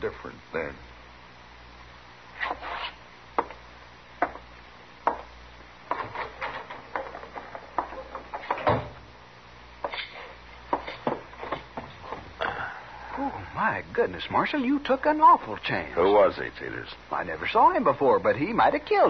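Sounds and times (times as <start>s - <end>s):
boot steps on wooden floor: 4.2s - 5.3s, 10.7s - 12.4s
door: 8.4s - 9.0s.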